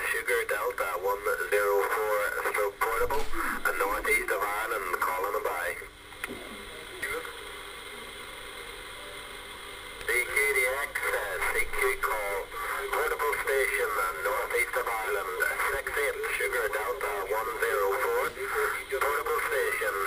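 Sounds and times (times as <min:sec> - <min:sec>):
radio static hiss: 0:00.0 - 0:20.0
distant garbled radio voice: 0:02.5 - 0:05.8.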